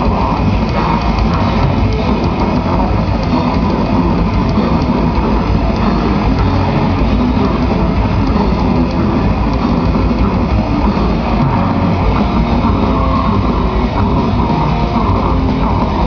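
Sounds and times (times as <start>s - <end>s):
live grindcore band: 0.0s - 16.0s.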